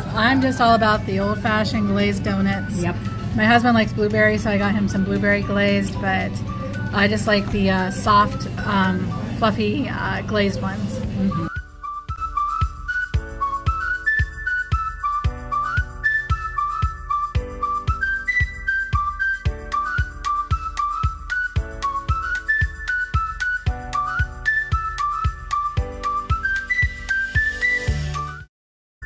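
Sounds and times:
whistled tune: 11.2s - 28.5s.

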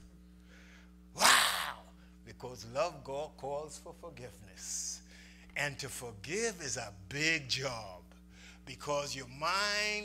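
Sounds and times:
soft intake of breath: 0.4s - 1.1s, 5.0s - 5.6s, 8.2s - 8.7s
man exclaiming wow: 1.2s - 1.9s.

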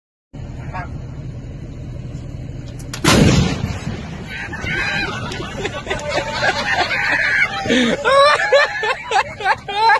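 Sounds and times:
low background rumble: 0.4s - 9.9s
howitzer firing blast: 3.0s - 5.5s.

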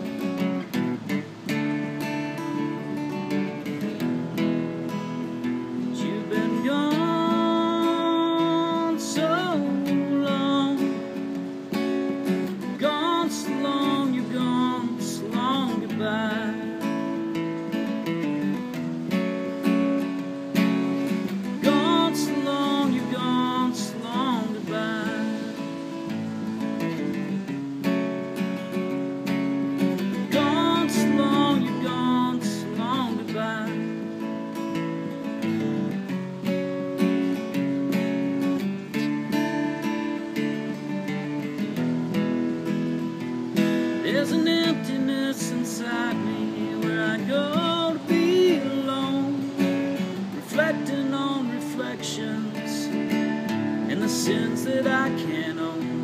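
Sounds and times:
acoustic guitar strummed: 0.0s - 56.0s
wordless vocal melody: 0.0s - 56.0s.

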